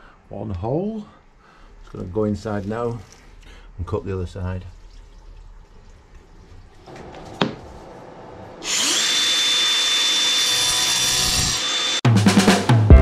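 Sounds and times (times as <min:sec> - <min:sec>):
power tool high whine: 0:08.6 - 0:12.0.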